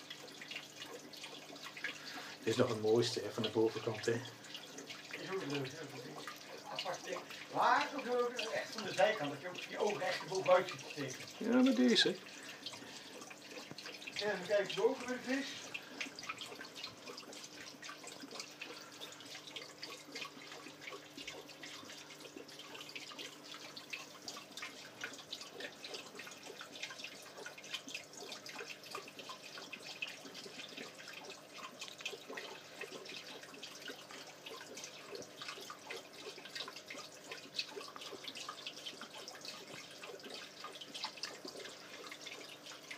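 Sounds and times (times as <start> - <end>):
faint steady hum: 0.0 - 42.9
water trickling and dripping: 0.0 - 42.9.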